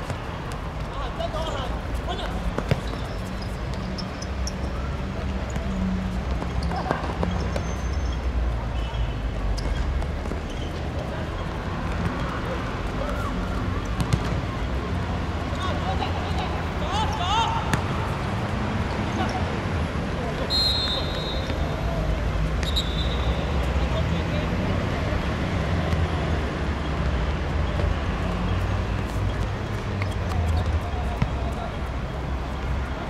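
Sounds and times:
ball kick thuds: 14.0s - 14.4s
high whistles: 20.5s - 21.7s, 22.6s - 23.4s.

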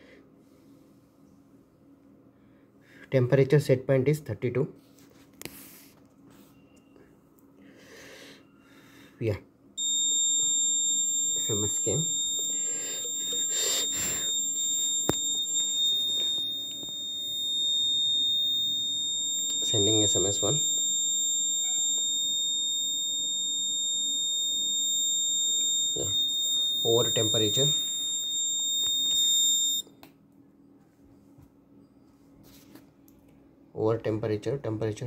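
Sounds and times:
piezo alarm buzzer tone: 9.8s - 29.8s.

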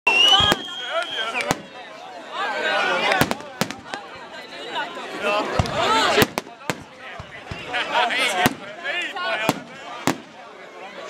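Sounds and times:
people talking and exclaiming: 0.0s - 11.0s
fireworks bursting: 0.1s - 1.9s, 3.0s - 4.7s, 5.4s - 10.4s.

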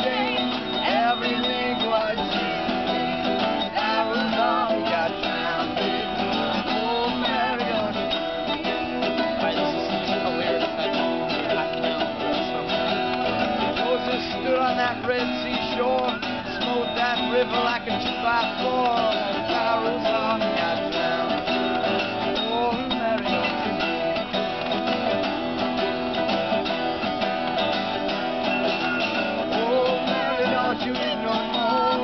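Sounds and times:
acoustic guitars strumming: 0.0s - 32.0s
mandolin picking a tune: 0.0s - 32.0s.

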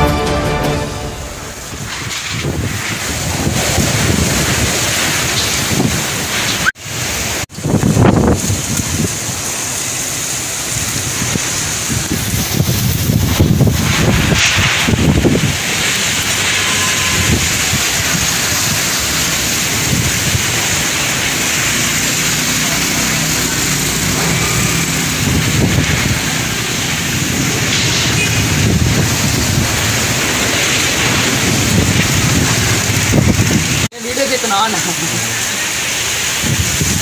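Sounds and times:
heavy rain pouring: 0.0s - 37.0s
wind gusts buffeting microphone: 1.8s - 6.6s, 7.5s - 9.5s, 10.7s - 21.2s, 24.3s - 33.9s, 36.3s - 37.0s.

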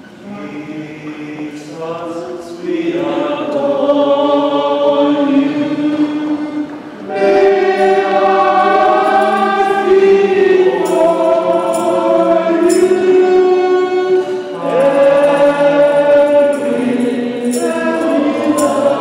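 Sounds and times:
voices singing a hymn: 0.0s - 19.0s.

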